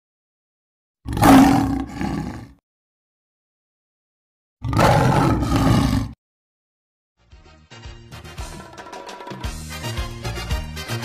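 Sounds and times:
lion roaring: 0:01.1 - 0:02.6, 0:04.6 - 0:06.2.

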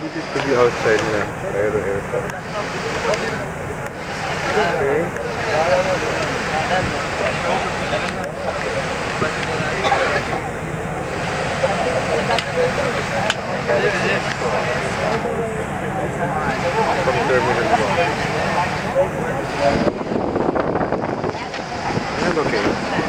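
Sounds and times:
indistinct chatter of passengers: 0:00.0 - 0:23.0
steady aircraft cabin noise: 0:00.0 - 0:23.0.

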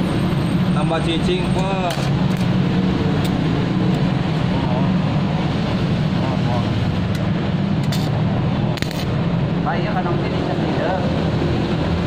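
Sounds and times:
welding arc crackling and hissing: 0:07.8 - 0:09.3.

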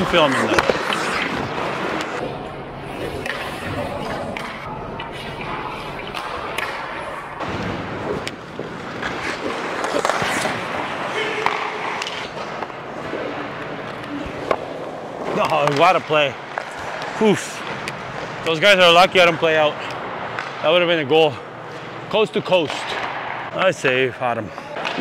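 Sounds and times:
hockey sticks and puck clacking: 0:00.0 - 0:02.2, 0:03.0 - 0:07.4, 0:08.0 - 0:23.6, 0:24.4 - 0:25.0
skate blades scraping on ice: 0:00.0 - 0:02.2, 0:08.0 - 0:14.6.

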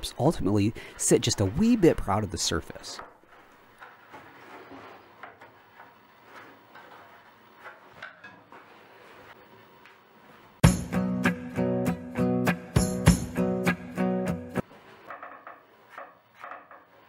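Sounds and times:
loud guitar music: 0:10.6 - 0:14.6.

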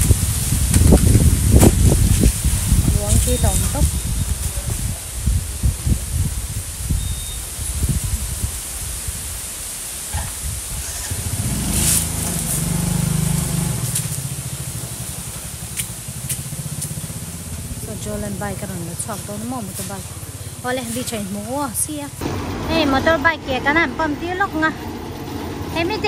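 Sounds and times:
motor scooter engine humming: 0:00.0 - 0:04.4, 0:10.4 - 0:26.0
irregular low rumbling: 0:10.4 - 0:26.0.

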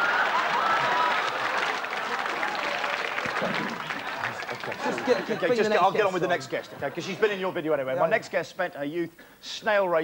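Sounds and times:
audience applauding: 0:00.0 - 0:06.7
audience laughing: 0:02.5 - 0:07.4.

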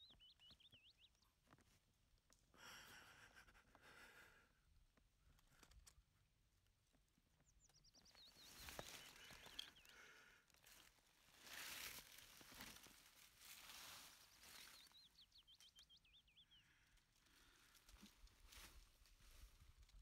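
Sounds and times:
bird chirping: 0:00.0 - 0:01.6, 0:07.0 - 0:10.3, 0:13.6 - 0:17.6
soft rustle: 0:10.5 - 0:15.3, 0:17.0 - 0:20.0.

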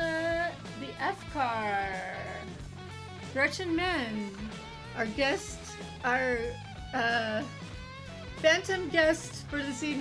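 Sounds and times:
electric guitar music: 0:00.0 - 0:10.0.

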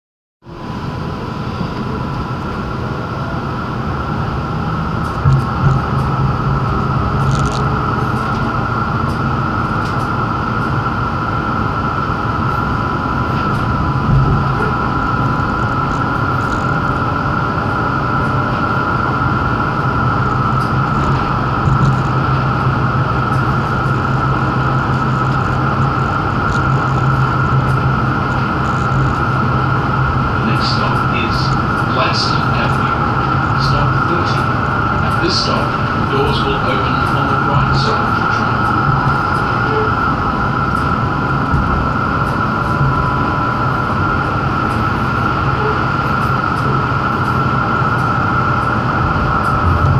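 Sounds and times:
tram wheels rumbling: 0:00.4 - 0:49.9.

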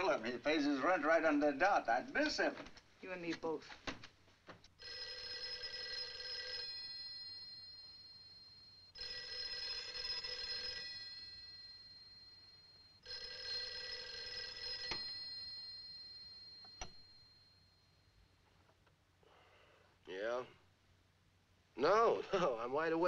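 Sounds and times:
telephone bell ringing: 0:04.8 - 0:18.0.

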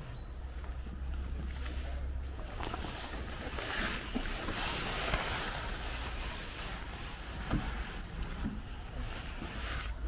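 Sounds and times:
rustling of long grass: 0:00.0 - 0:10.0.

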